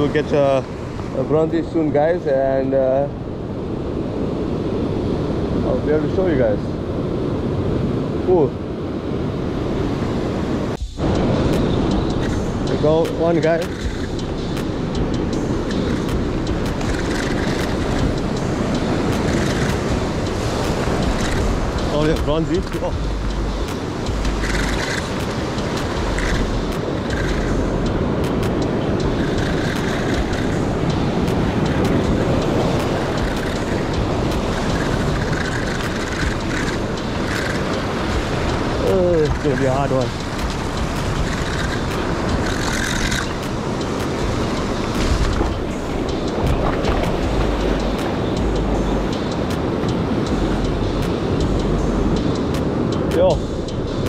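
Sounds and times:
surf breaking over rocks: 0:28.2 - 0:47.4.

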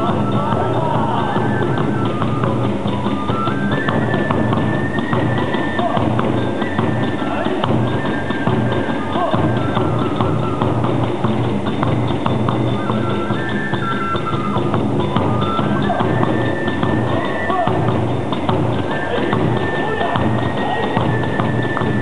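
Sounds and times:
bamboo flute melody: 0:00.0 - 0:22.0
fast continuous drumming: 0:00.0 - 0:22.0
hand cymbals clashing: 0:00.0 - 0:22.0.

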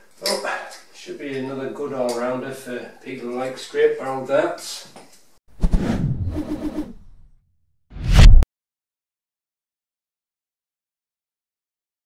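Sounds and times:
whoosh: 0:05.6 - 0:07.3, 0:07.9 - 0:08.4.

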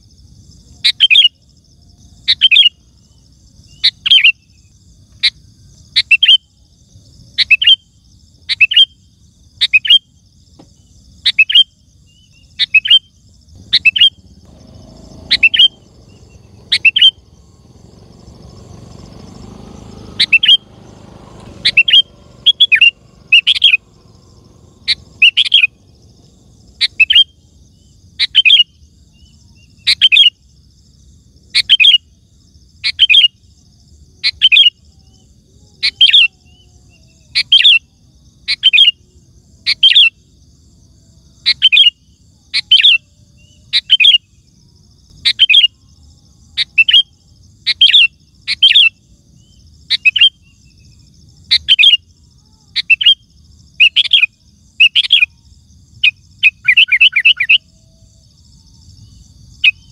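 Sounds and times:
bulbul singing: 0:07.4 - 0:30.6, 0:41.4 - 0:59.9.

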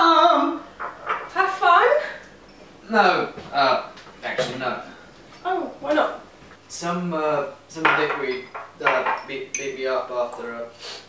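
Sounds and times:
crockery and glasses clinking: 0:00.8 - 0:01.4, 0:07.8 - 0:10.5.

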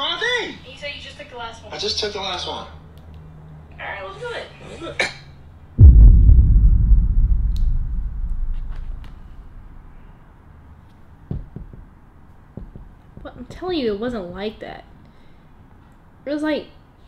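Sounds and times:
deep rumbling boom: 0:05.8 - 0:09.9.

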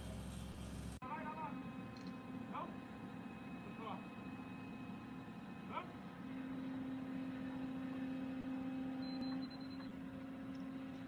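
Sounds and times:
diesel engine running: 0:00.0 - 0:11.0
faint high whine: 0:00.0 - 0:11.0.

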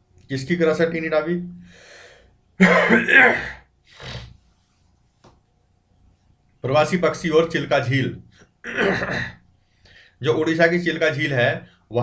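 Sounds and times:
faint breath: 0:01.6 - 0:02.4, 0:09.6 - 0:10.2
man laughing: 0:02.6 - 0:03.5.

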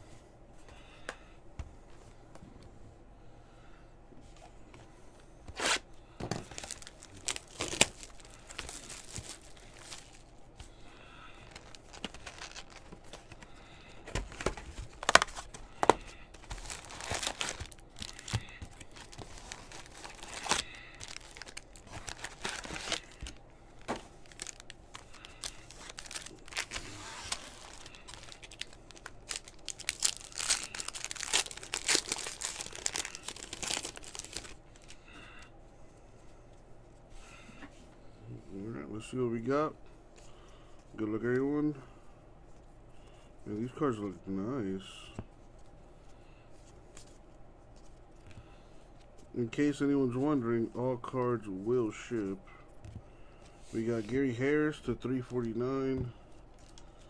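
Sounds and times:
foil packs ripping and crinkling: 0:05.5 - 0:35.1.

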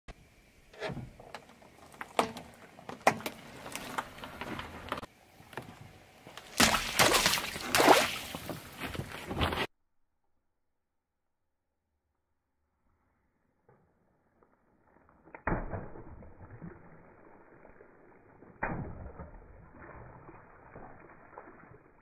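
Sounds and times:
crackling and splashing: 0:01.1 - 0:05.1, 0:06.2 - 0:09.4, 0:15.1 - 0:22.0.

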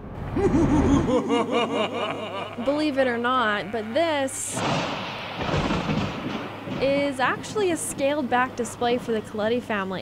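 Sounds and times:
rolling thunder: 0:04.5 - 0:08.1.

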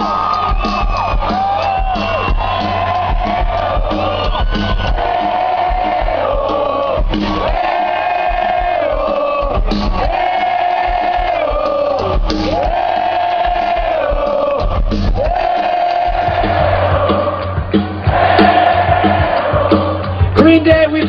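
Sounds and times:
crowd noise: 0:00.0 - 0:21.0.

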